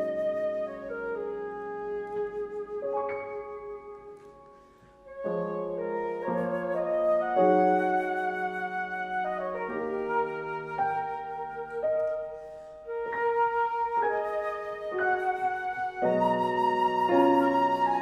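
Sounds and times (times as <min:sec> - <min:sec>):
flute and piano chamber music: 0:00.0 - 0:18.0.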